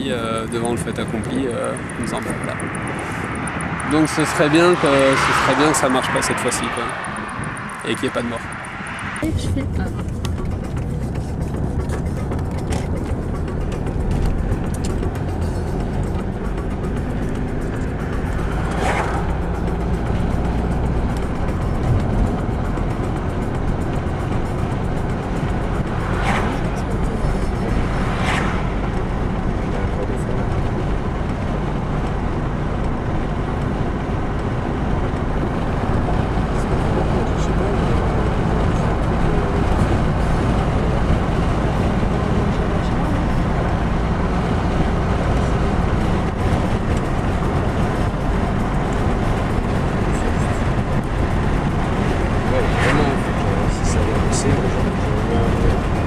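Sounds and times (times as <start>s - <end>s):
car engine and tyre rumble: 0.0s - 56.0s
brief swishes: 18.7s - 19.4s.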